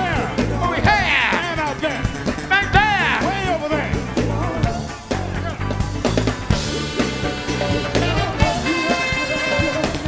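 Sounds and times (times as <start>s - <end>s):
bass line: 0.0s - 10.0s
funk band playing: 0.0s - 10.0s.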